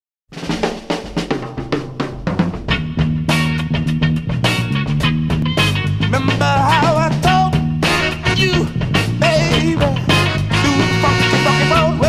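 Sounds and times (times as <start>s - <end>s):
drum kit snare and kick: 0.3s - 12.0s
pitched instruments: 0.4s - 12.0s.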